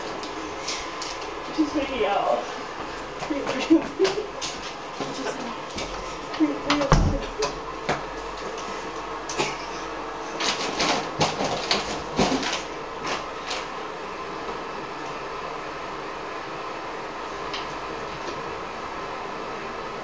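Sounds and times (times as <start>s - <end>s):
clicks and rustles of movement: 10.3s - 13.7s.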